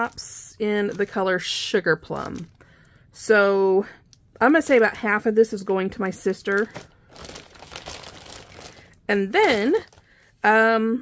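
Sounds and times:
plastic packaging crinkling: 0:00.0 - 0:02.9, 0:06.1 - 0:10.3.

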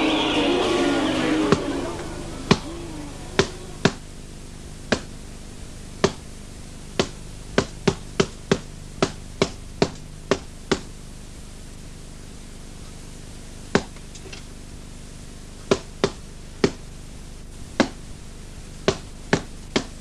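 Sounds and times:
low steady hum: 0:00.0 - 0:20.0.

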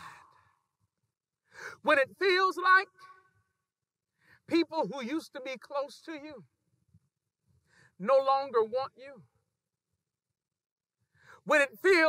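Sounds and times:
quick breath in: 0:07.6 - 0:08.0
man speaking: 0:08.0 - 0:09.2.

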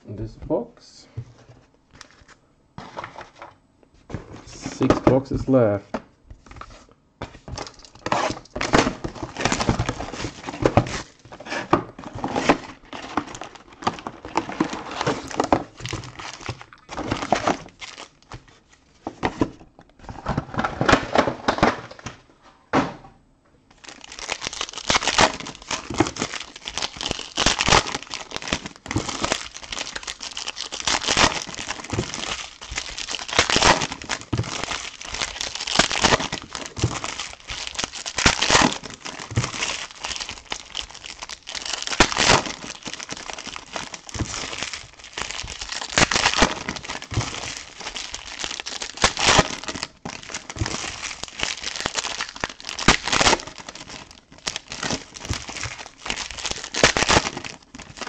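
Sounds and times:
plastic wrapping crinkling: 0:06.4 - 0:22.0, 0:23.7 - 0:58.0
card packs tearing: 0:07.4 - 0:18.5, 0:23.8 - 0:58.0.

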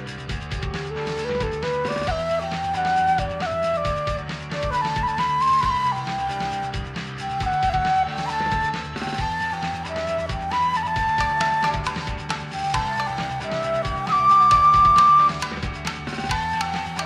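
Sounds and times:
bamboo flute melody: 0:00.0 - 0:17.0
pop backing track with drums: 0:00.0 - 0:17.0.

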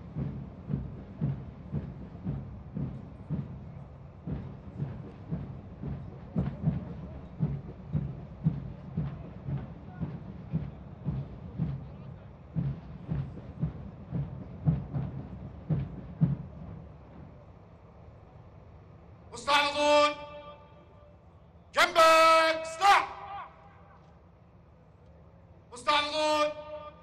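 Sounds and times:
deep drum beat: 0:00.0 - 0:17.3.

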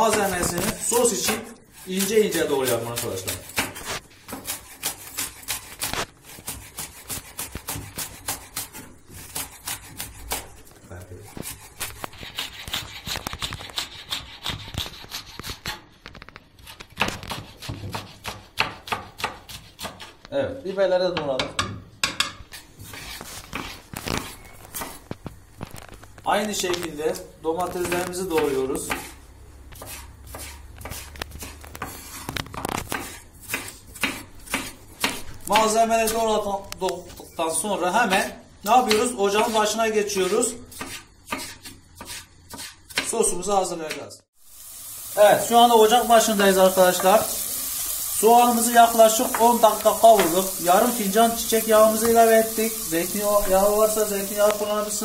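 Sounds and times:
knife chopping on wooden board: 0:02.7 - 0:10.6, 0:16.6 - 0:20.2, 0:27.6 - 0:29.2, 0:29.8 - 0:35.8, 0:40.7 - 0:43.2.

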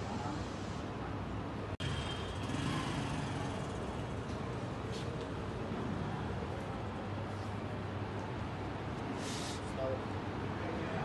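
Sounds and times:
road traffic hum: 0:00.0 - 0:11.0.

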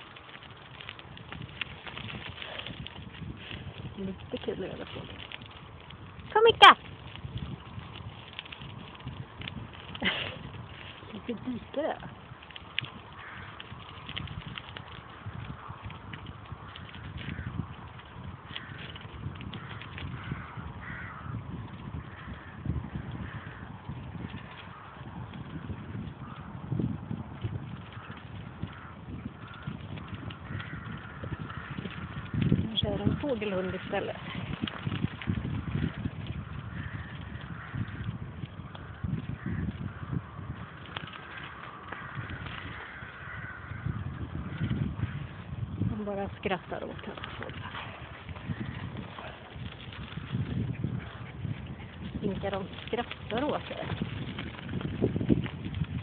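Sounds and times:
bicycle riding rumble in wind: 0:00.0 - 0:56.0
crow cawing: 0:12.9 - 0:14.1, 0:17.0 - 0:17.8, 0:18.4 - 0:23.8, 0:24.6 - 0:25.1, 0:26.2 - 0:26.6, 0:27.9 - 0:34.6, 0:35.5 - 0:45.6, 0:46.8 - 0:50.3.

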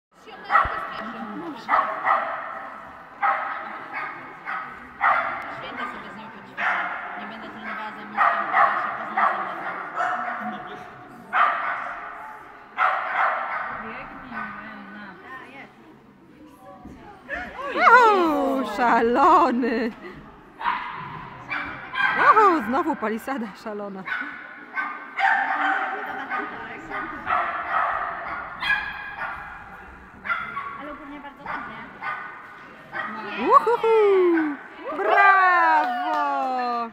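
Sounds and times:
dog barking with echo: 0:00.4 - 0:01.0, 0:01.7 - 0:06.0, 0:06.6 - 0:10.7, 0:11.3 - 0:13.8, 0:24.1 - 0:33.3.

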